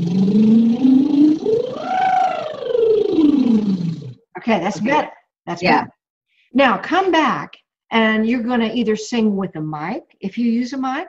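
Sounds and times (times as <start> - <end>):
woman doing lip trill: 0.0 - 4.2.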